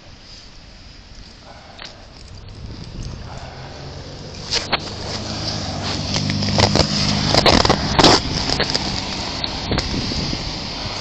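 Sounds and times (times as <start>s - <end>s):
camera rubbing against clothing: 4.4s - 10.3s.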